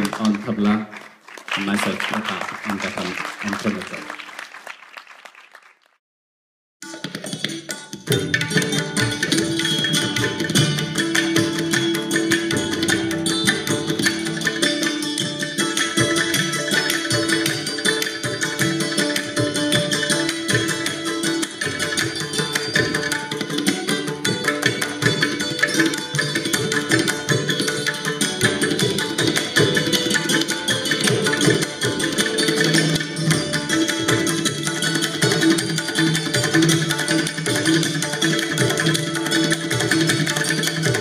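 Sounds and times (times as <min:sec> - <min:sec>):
tabla and hand percussion: 0:00.0 - 0:05.5, 0:06.8 - 0:41.0
santoor playing: 0:07.7 - 0:41.0.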